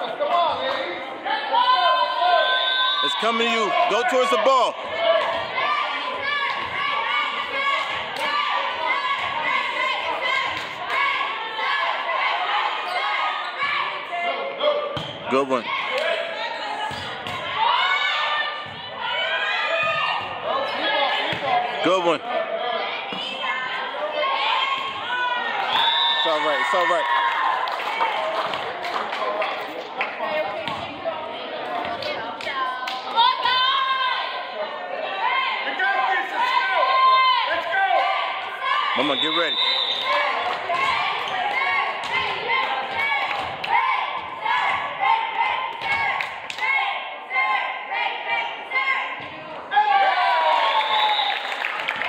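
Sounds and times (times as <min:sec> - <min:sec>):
chatter and calls echoing: 0:00.0 - 0:52.0.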